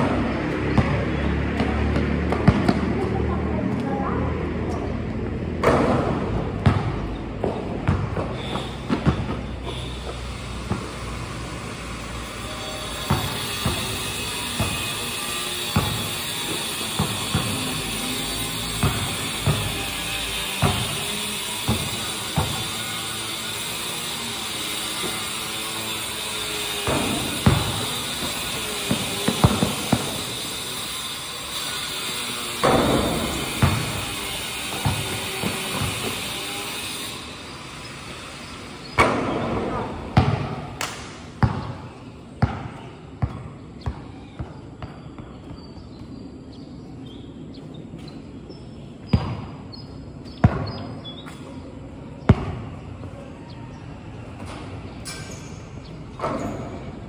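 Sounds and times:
basketball bouncing on concrete: 0:00.0 - 0:11.8, 0:12.4 - 0:37.2, 0:38.8 - 0:46.6, 0:48.0 - 0:53.2.

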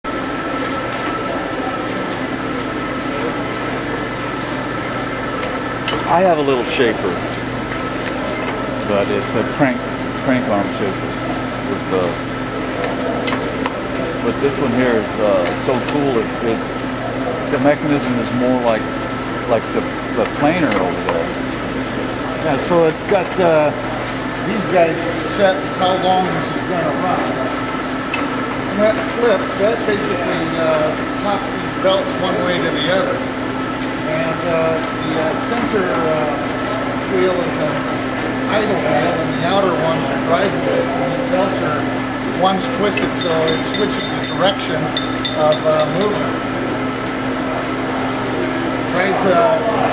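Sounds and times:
metal shaper mechanical hum: 0:00.1 - 0:49.9.

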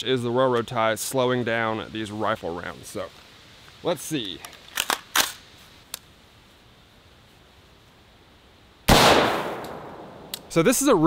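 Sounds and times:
rifle handling clicks: 0:04.2 - 0:06.0
rifle shot with echo: 0:08.9 - 0:10.4.

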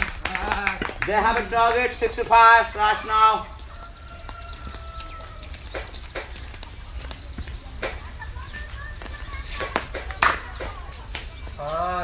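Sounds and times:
sharp knocks or claps: 0:00.0 - 0:02.4, 0:05.6 - 0:06.7, 0:07.8 - 0:08.1, 0:09.5 - 0:11.3.

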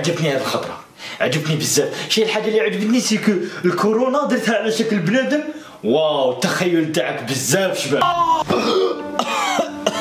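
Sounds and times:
man coughing: 0:08.2 - 0:10.0.

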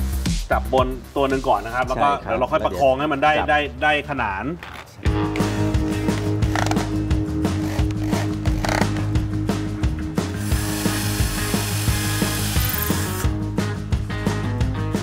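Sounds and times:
drill ratchet clicking: 0:06.5 - 0:06.9, 0:07.5 - 0:08.9, 0:10.4 - 0:13.3
drill motor hissing: 0:07.5 - 0:08.9, 0:10.3 - 0:13.3.

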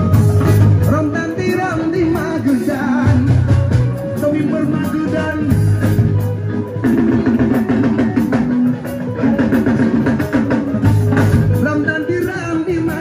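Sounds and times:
drum kit and percussion: 0:00.0 - 0:13.0
guitar playing repeating riff: 0:00.0 - 0:13.0.

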